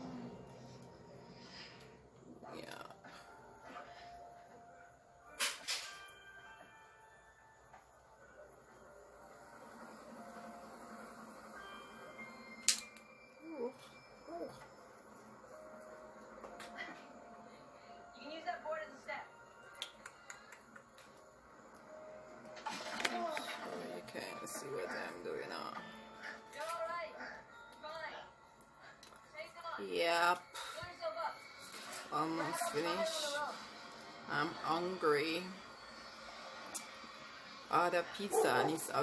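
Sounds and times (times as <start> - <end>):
faint background music: 0.0 - 39.0
voices: 37.7 - 39.0.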